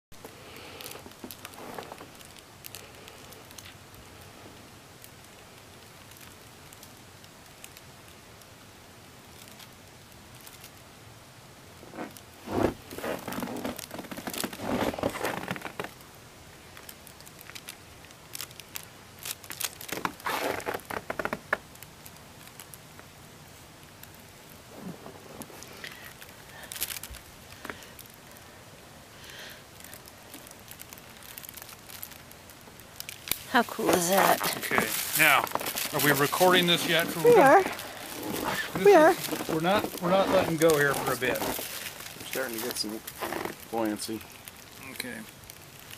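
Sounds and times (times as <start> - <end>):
low steady hiss: 0.1 - 45.9
balloon crinkling and rustling: 0.2 - 7.9, 9.2 - 10.8, 11.8 - 28.7, 29.4 - 45.9.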